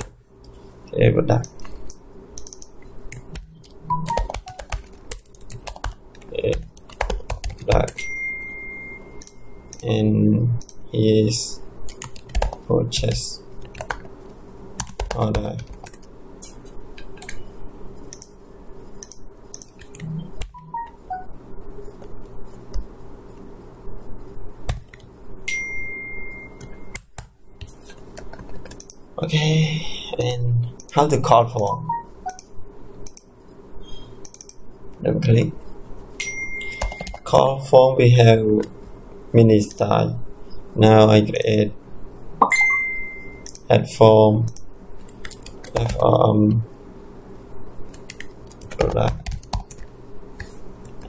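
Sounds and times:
low background hum: 0.0s - 51.0s
keyboard typing: 1.4s - 8.0s, 11.9s - 14.1s, 14.8s - 16.1s, 17.2s - 17.4s, 19.0s - 21.3s, 26.5s - 29.0s, 31.6s - 33.3s, 34.2s - 34.6s, 36.6s - 37.4s, 44.5s - 46.1s, 47.9s - 51.0s
thin high tone: 20.6s - 21.3s, 42.4s - 43.5s.

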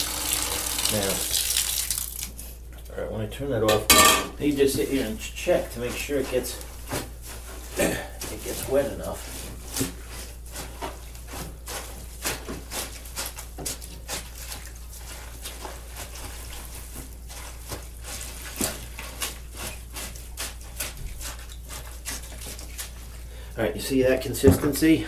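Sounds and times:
wet paper pulp squishing: 0.0s - 2.9s, 4.4s - 25.0s.

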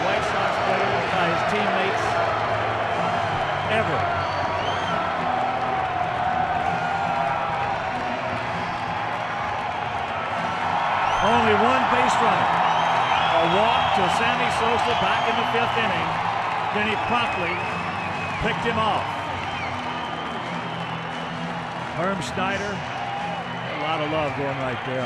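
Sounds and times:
crowd cheering and clapping: 0.0s - 25.0s.

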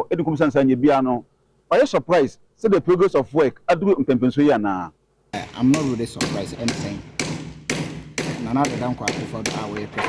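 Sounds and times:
man talking: 0.0s - 7.1s, 8.3s - 10.0s
hammer blows on roof: 5.4s - 10.0s.

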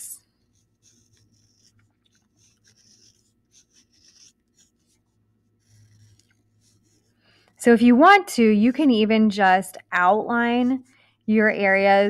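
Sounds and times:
stylus scratching on paper: 0.3s - 8.1s, 9.8s - 12.0s.

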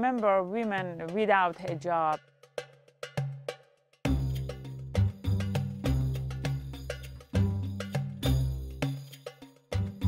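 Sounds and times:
background music: 0.0s - 10.0s
struck percussion notes: 0.0s - 10.0s.

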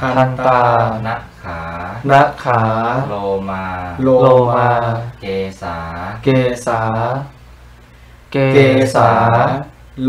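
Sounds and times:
man chanting: 0.0s - 7.4s, 8.3s - 10.0s.

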